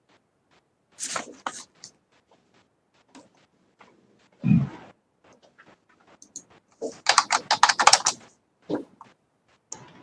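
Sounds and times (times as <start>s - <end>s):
computer keyboard typing: 6.1s - 9.1s.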